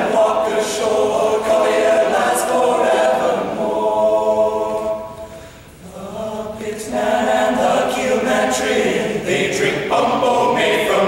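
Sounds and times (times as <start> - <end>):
men singing a cappella: 0.0 - 5.1, 5.8 - 11.0.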